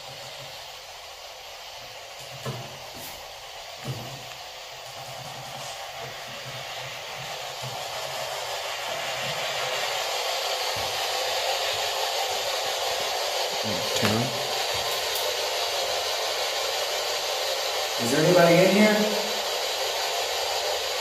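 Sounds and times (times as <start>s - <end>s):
steady hiss: 0.0s - 21.0s.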